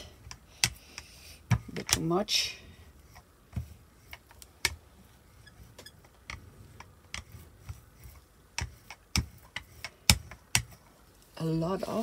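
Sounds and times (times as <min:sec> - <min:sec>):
rubber brayer clicking on paint: 0:05.7 - 0:10.8.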